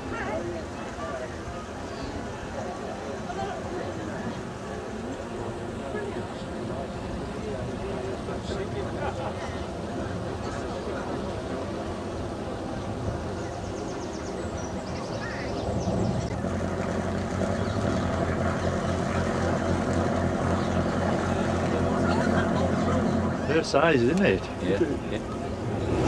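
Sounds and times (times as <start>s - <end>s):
boat engine throbbing: 3.7s - 26.0s.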